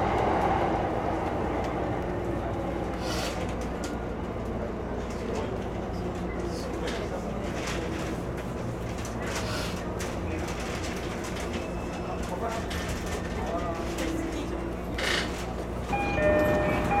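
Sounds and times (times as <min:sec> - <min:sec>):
train wheels rumbling on rail: 0:00.0 - 0:17.0
steady multi-tone chord: 0:15.9 - 0:17.0.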